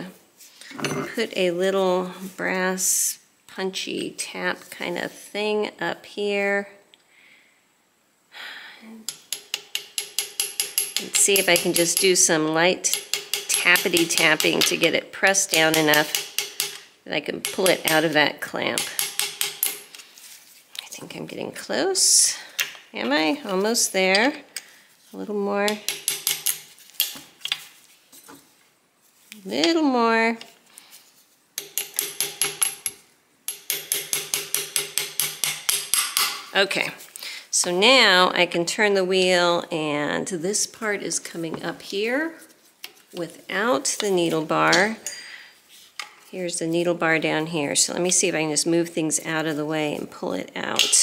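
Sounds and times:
hammer tapping metal punch: 9.1 - 12.2, 12.9 - 14.8, 15.5 - 19.8, 25.7 - 27.2, 31.6 - 36.5.

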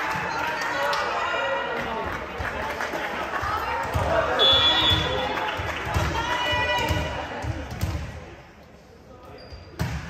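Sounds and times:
voices echoing: 0.1 - 9.8
shoe squeaks: 9.3 - 9.8.

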